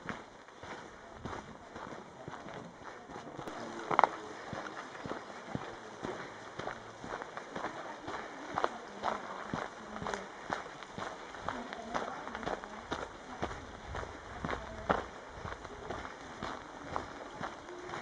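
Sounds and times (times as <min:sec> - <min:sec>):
footsteps on a trail: 0:00.0 - 0:18.0.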